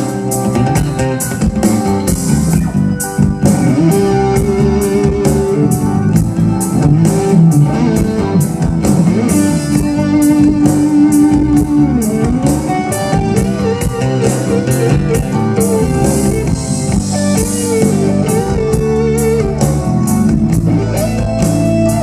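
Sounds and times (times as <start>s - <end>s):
drums: 0.0s - 22.0s
electric guitar lead: 0.0s - 22.0s.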